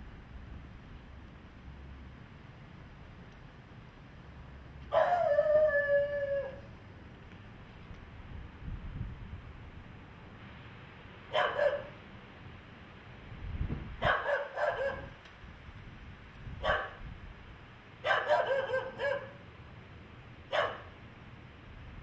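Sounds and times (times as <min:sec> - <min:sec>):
dog barking: 0:04.9 - 0:05.3, 0:11.3 - 0:12.0, 0:14.0 - 0:15.2, 0:16.6 - 0:17.0, 0:18.0 - 0:19.4, 0:20.5 - 0:20.9.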